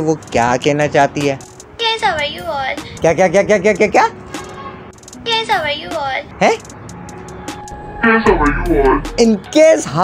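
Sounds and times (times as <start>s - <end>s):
young woman speaking: 5.3s - 6.3s.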